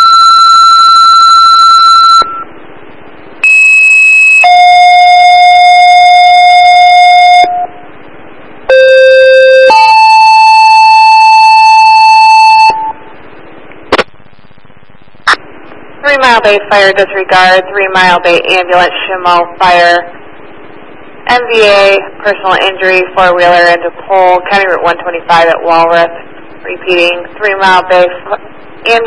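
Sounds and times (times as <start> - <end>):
two-tone paging tones: 8.7 - 13.0
radio hiss: 13.0 - 29.0.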